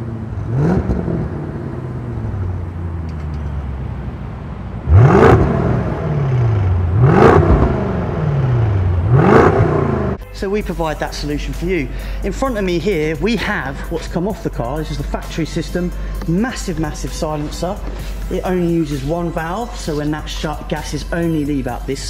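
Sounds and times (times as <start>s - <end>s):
engine revving through exhaust: 0.0s - 3.0s, 4.8s - 10.2s.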